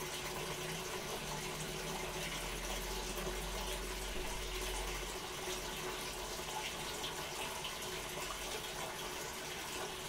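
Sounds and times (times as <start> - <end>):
washing machine filling with water: 0.0 - 10.0.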